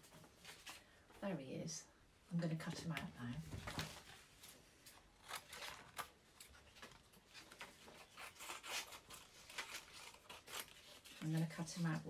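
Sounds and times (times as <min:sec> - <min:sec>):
scissors snipping paper: 0:05.2 - 0:12.0.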